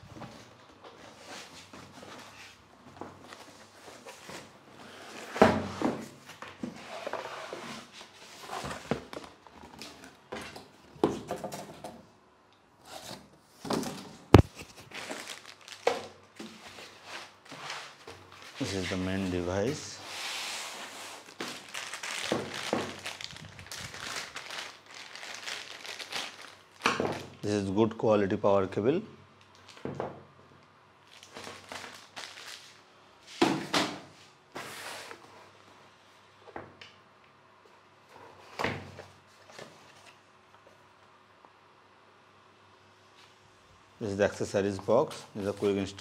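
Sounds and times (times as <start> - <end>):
plastic bag crinkling: 14.4 - 16.3, 21.2 - 27.4, 31.0 - 32.8.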